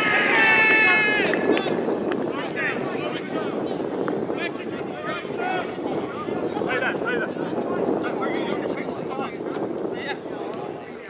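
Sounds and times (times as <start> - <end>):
distant shouts and chatter: 0.0 - 11.0
wind rumbling on microphone: 0.0 - 11.0.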